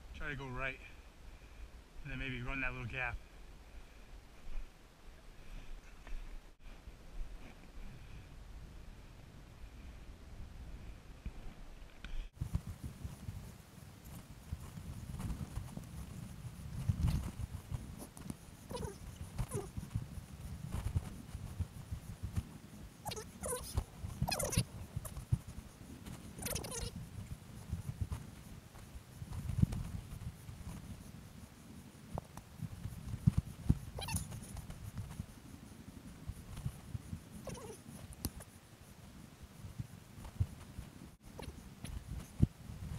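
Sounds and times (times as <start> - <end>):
backpack gear rubbing: 12.4 - 39.2.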